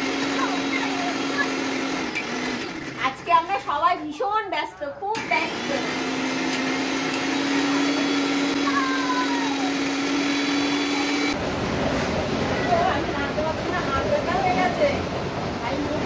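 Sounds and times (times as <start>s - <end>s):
mixer grinder motor whine: 0.0s - 3.3s, 5.2s - 11.5s.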